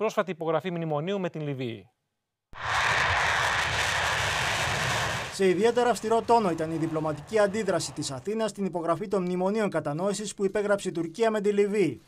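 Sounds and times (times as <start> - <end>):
jet engine roar: 2.6 - 8.2.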